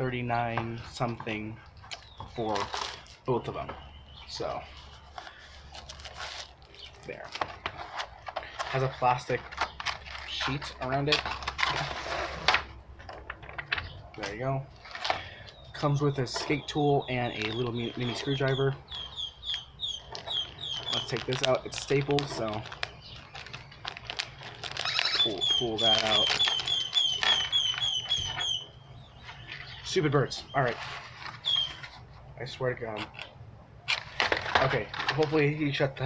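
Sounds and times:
bird chirping: 0.0 - 7.8, 8.4 - 11.9, 13.6 - 33.4
cardboard and plastic rustling: 1.8 - 16.6, 20.0 - 28.5, 30.7 - 32.2, 33.9 - 35.7.

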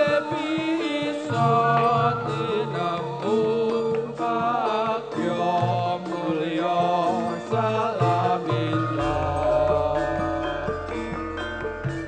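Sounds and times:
person chanting: 0.0 - 12.0
ringing metallophones: 0.0 - 12.0
low hand-drum strokes: 7.5 - 12.0.

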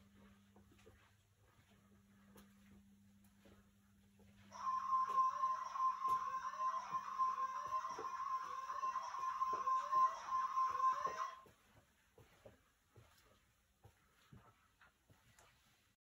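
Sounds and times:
steady high electronic tone: 4.5 - 11.4.

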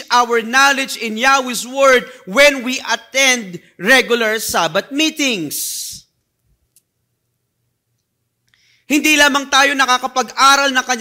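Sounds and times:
man speaking: 0.0 - 6.1, 8.9 - 11.0.

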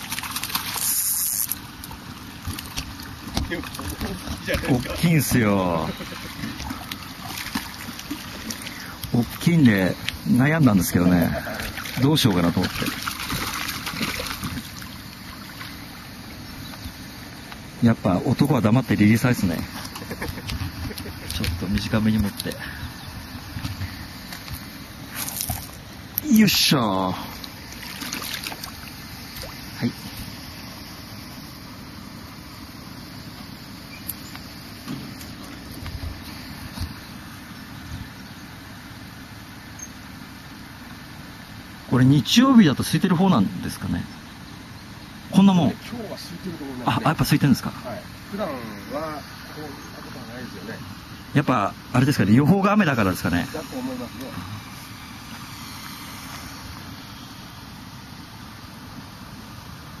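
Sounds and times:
even hiss: 0.0 - 2.4, 3.0 - 60.0.

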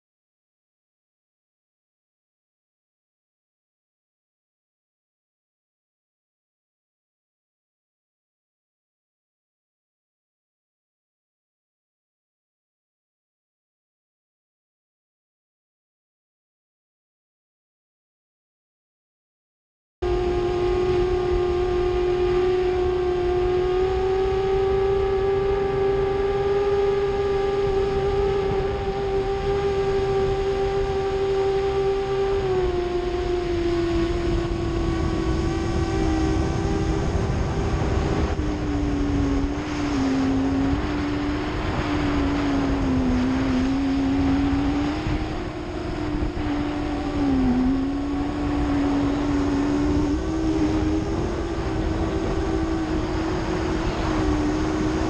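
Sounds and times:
quadcopter motors whining: 20.0 - 55.0
wind rushing: 32.4 - 55.0.

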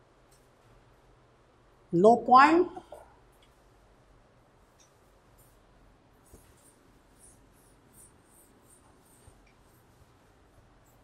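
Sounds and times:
eraser rubbing on whiteboard: 6.2 - 11.0.

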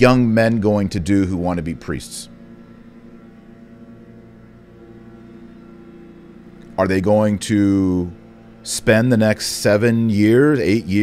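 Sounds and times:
leaf blowers running: 0.0 - 11.0.

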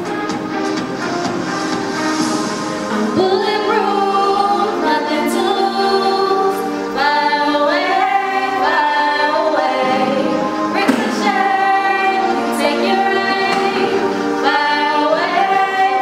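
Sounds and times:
women singing into a microphone: 3.1 - 16.0.

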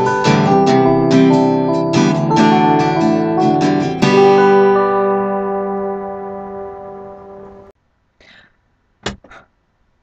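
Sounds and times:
acoustic guitar chord ringing: 0.0 - 7.7.

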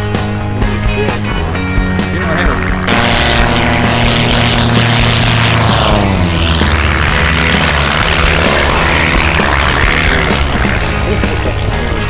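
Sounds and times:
background music: 0.0 - 12.0
light plane engine and propeller: 0.0 - 12.0.

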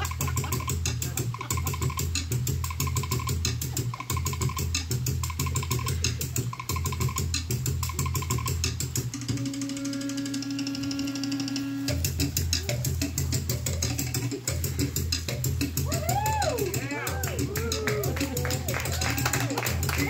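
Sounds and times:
fast dance drumming: 0.0 - 9.6, 11.9 - 20.0
long held note: 9.3 - 12.0.

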